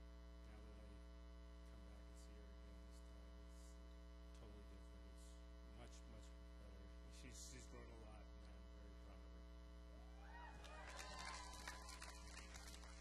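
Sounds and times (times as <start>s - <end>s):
electrical mains hum: 0.0s - 13.0s.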